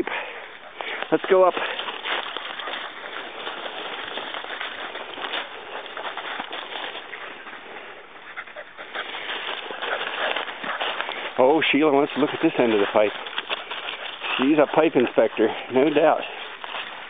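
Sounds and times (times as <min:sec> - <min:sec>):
footsteps crunching dry leaves: 0:00.0 - 0:17.0.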